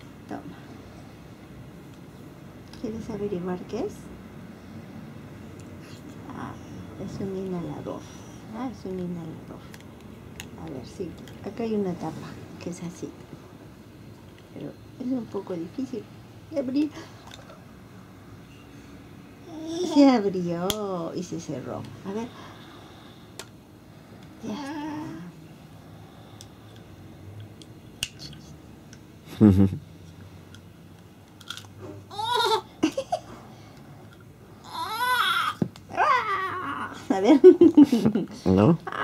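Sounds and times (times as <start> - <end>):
toddler vocalizing: 32.1 - 32.7, 34.6 - 37.0.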